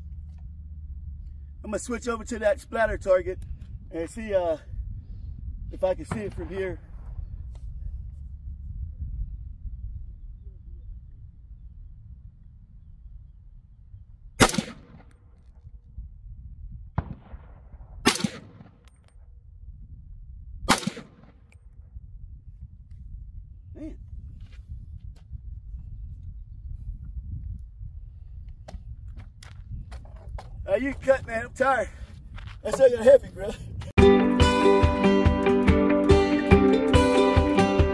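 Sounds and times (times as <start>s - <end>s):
steady low rumble: 0.0s - 34.0s
rifle shots: 14.4s - 15.1s, 17.0s - 18.8s, 20.7s - 21.4s.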